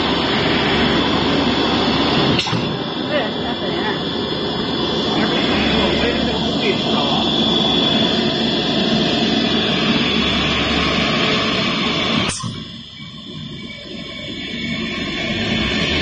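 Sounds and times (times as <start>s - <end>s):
cnc router spindle whine: 0.0s - 16.0s.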